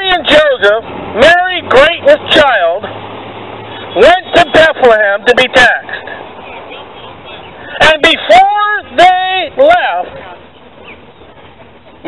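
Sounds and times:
person shouting: 0:07.9 - 0:10.0.

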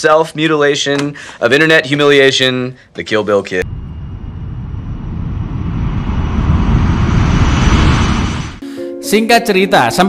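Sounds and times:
deep rumbling whoosh: 0:03.6 - 0:08.6.

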